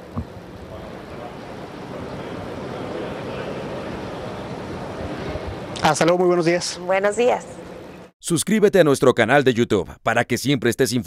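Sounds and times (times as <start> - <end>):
outdoor background noise: 0.0 - 8.2.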